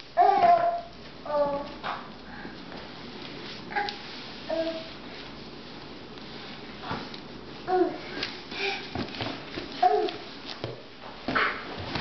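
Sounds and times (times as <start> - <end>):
toddler whining: 0.2 - 1.7, 9.8 - 10.2.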